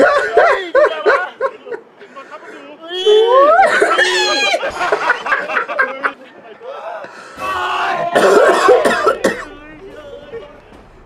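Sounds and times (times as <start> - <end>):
man gagging and coughing: 8.1 - 9.6.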